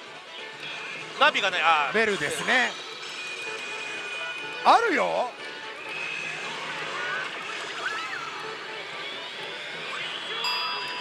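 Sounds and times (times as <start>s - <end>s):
noise of many gaming machines: 0.0s - 11.0s.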